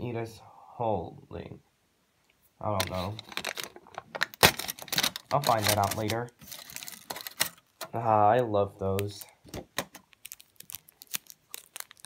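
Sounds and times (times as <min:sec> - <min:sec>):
paper wrapper crinkling and tearing: 0:02.8 - 0:07.7, 0:09.0 - 0:12.0.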